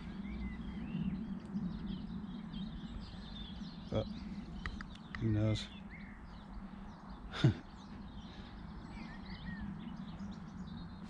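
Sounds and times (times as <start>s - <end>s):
songbirds singing: 0.0s - 11.0s.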